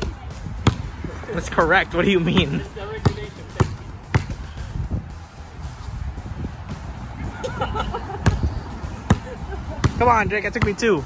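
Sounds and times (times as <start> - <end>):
basketball bouncing on concrete: 0.0 - 0.9, 2.2 - 4.4, 8.2 - 11.0.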